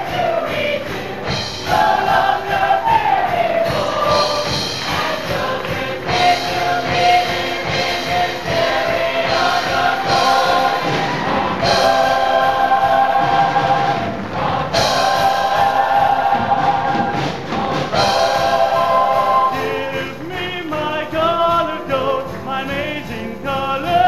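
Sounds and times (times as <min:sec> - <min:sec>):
cast singing in chorus: 0:00.0 - 0:21.0
instrumental accompaniment: 0:00.0 - 0:24.0.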